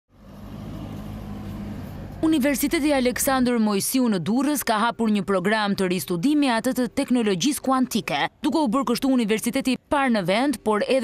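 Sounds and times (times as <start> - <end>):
street traffic engine hum: 0.1 - 5.0.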